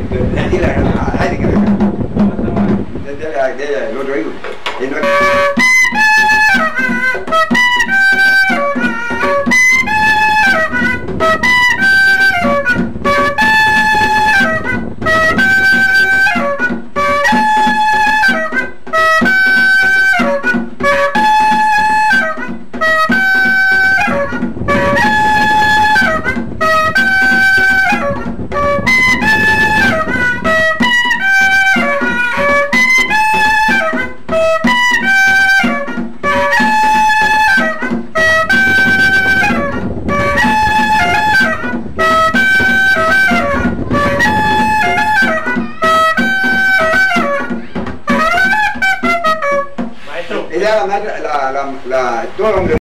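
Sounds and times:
buzzy cane clarinet melody: 4.8 - 51.0.

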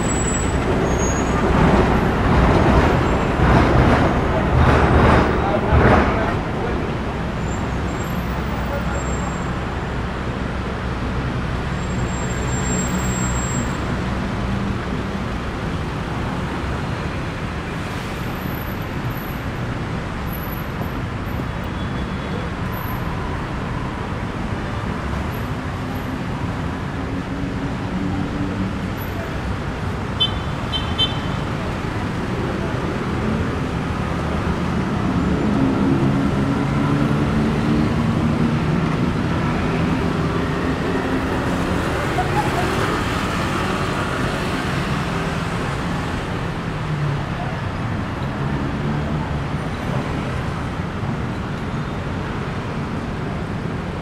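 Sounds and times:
city road traffic: 0.0 - 54.0.

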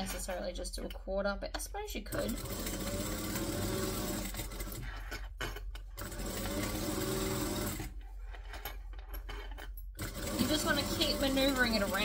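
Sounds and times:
sewing machine stitching: 2.1 - 8.0, 10.0 - 12.0.

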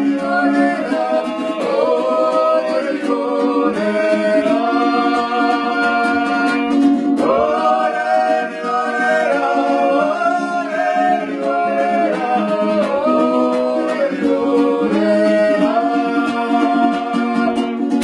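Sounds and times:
person singing sliding notes: 0.0 - 17.8.

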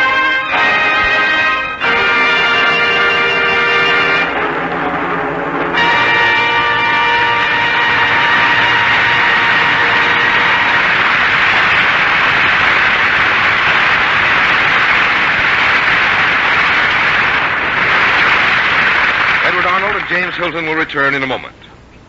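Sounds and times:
orchestral chord: 0.0 - 12.9
audience applause: 0.0 - 21.2
announcer speaking: 19.4 - 21.7.

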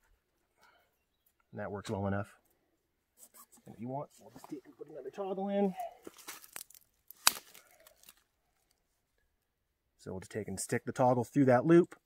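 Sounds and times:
cord rustling: 5.9 - 8.8.

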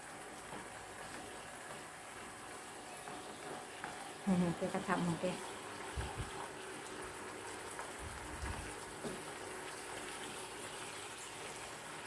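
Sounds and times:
pumpkin sizzling in frying pan: 0.0 - 12.0.

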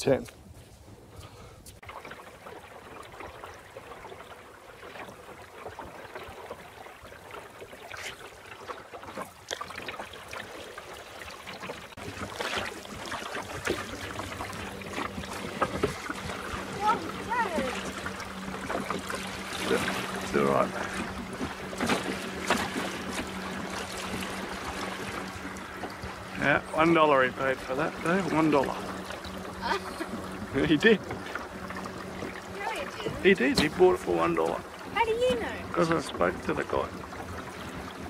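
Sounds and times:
water splashing against a hull: 0.0 - 38.0
low steady hum: 8.8 - 38.0.

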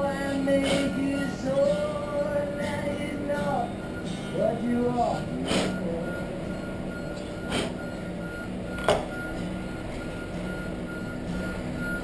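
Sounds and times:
high beep: 0.0 - 12.0
low hum: 0.0 - 12.0.

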